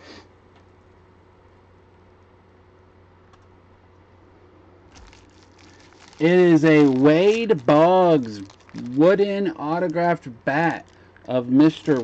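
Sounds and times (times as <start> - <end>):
bubble wrap crinkling: 4.9 - 12.0.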